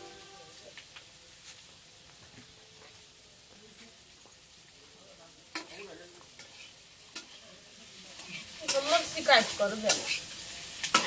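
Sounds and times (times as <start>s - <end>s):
food sizzling in a wok: 0.0s - 11.0s
spatula scraping wok: 5.5s - 11.0s
metal spatula clinking on wok: 8.2s - 9.2s.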